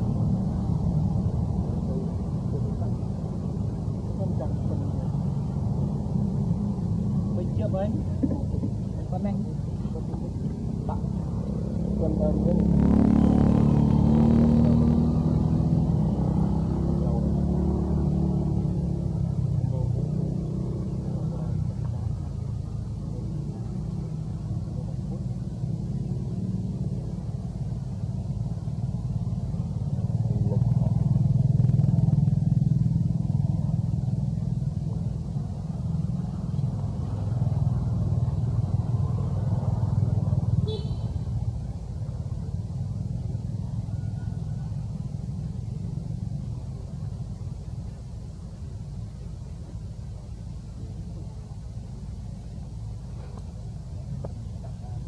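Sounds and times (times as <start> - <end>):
low vehicle engine rumble: 0.0 - 55.0.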